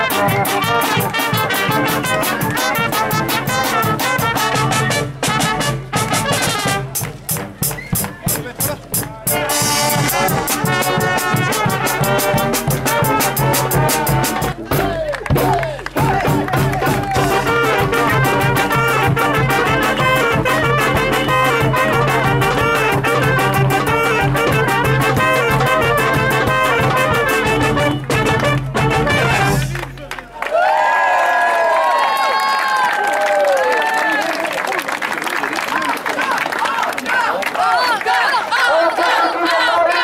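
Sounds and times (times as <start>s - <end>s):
snare drum: 0.0s - 29.8s
street brass band playing: 0.0s - 30.2s, 36.3s - 40.0s.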